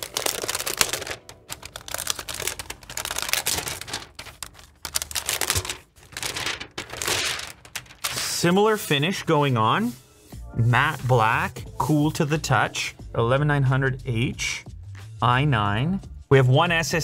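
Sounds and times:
plastic wrapping crinkling: 0:00.0 - 0:08.5.

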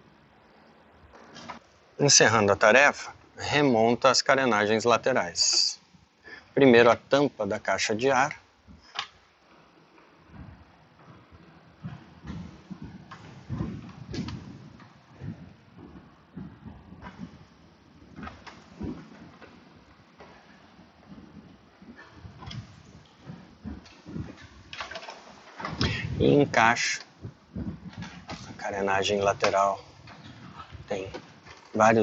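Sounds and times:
plastic parts knocking and scraping: 0:10.0 - 0:26.2, 0:26.8 - 0:28.7.

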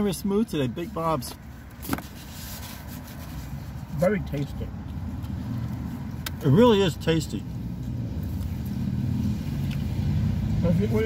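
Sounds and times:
car engine humming: 0:00.0 - 0:11.0.

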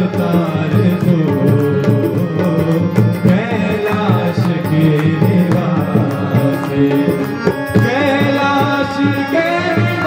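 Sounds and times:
harmonium chords: 0:00.0 - 0:10.0
tabla strokes: 0:00.0 - 0:10.0.

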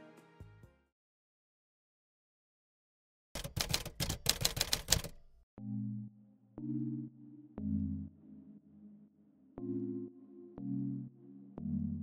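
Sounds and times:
typewriter keystroke clicks: 0:03.4 - 0:05.4
soft low synthesizer tones: 0:05.6 - 0:12.0.

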